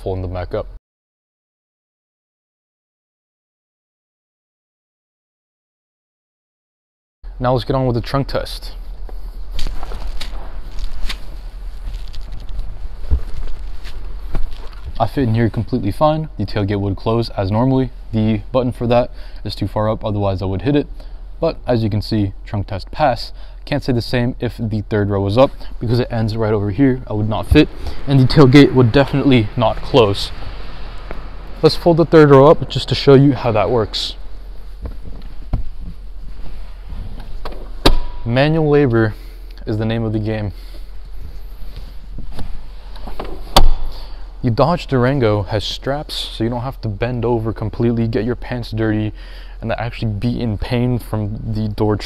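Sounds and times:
steady low hum: 7.3 - 52.0
clothing rustling: 8.9 - 15.0, 34.2 - 37.9
seatback locking clunk: 37.2 - 38.2.

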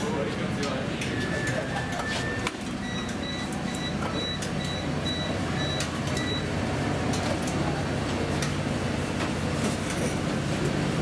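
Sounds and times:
kitchen extraction hum: 0.0 - 11.0.

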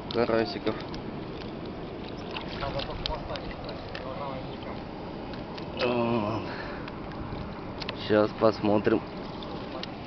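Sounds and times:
outdoor noise: 0.0 - 10.0
water sloshing and splashing: 0.0 - 10.0.

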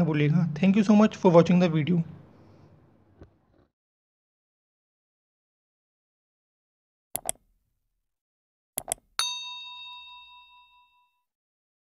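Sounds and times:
mouse click: 7.2 - 7.4, 8.8 - 9.0
bright bell ding: 9.2 - 11.2.

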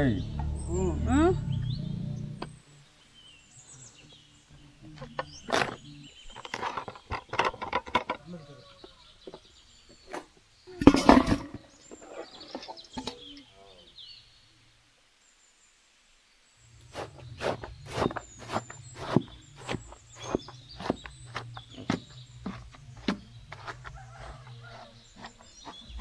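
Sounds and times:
birds chirping: 0.0 - 26.0.

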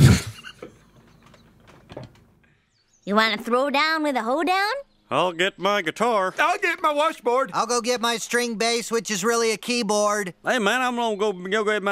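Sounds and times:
small knocks and rustles at desk: 0.6 - 2.4.

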